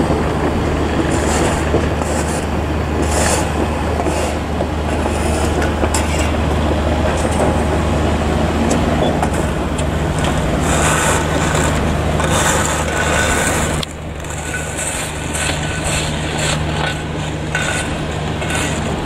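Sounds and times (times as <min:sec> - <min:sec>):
construction machinery diesel engines: 0:00.0 - 0:19.0.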